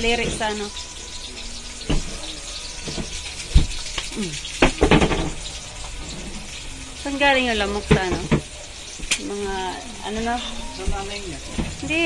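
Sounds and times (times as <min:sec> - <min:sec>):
food sizzling in a wok: 0:00.0 - 0:12.0.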